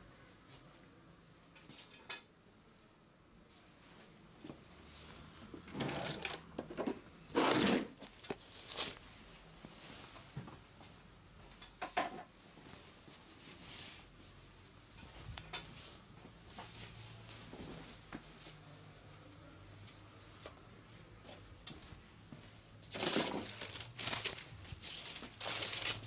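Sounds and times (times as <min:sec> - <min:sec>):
drawer rummaging clatter: 0:05.6 - 0:08.9, 0:22.9 - 0:26.0
fabric rustling: 0:22.9 - 0:26.0.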